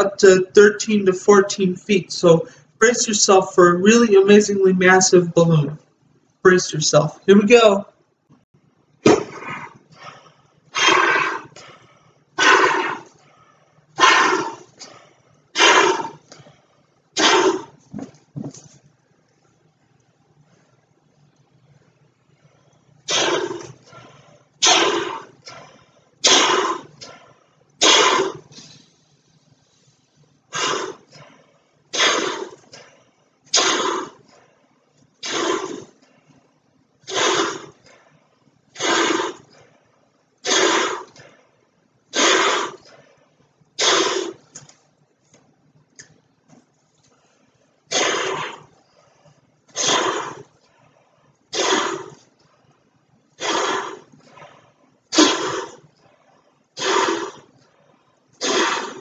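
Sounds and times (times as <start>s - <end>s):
breathy puffs into balloon: 23.1s - 34.6s, 35.2s - 36.0s, 37.0s - 38.2s, 38.8s - 39.8s, 40.4s - 41.4s, 42.1s - 43.1s, 43.8s - 44.5s, 47.9s - 49.0s, 49.7s - 50.6s, 51.5s - 52.3s, 53.4s - 55.9s, 56.8s - 57.6s, 58.4s - 59.0s.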